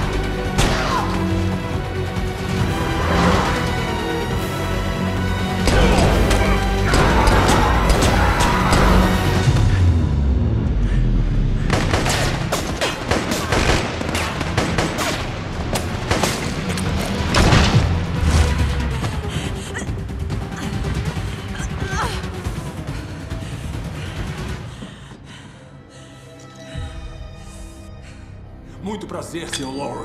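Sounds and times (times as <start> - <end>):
orchestral score: 0.0 - 11.0
deep rumble: 8.8 - 12.1
gunfire: 11.7 - 16.6.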